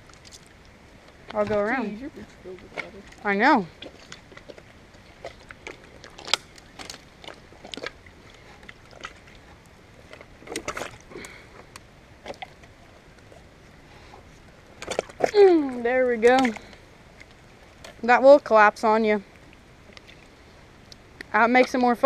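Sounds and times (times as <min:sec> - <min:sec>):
low steady hiss: 0:00.0 - 0:22.0
sticks snapping underfoot: 0:05.2 - 0:08.0.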